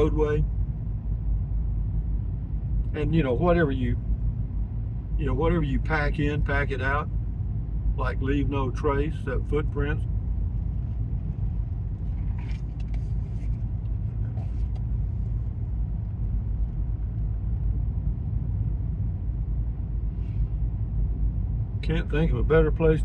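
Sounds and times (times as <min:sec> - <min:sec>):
car road and engine rumble: 0:00.0 - 0:23.0.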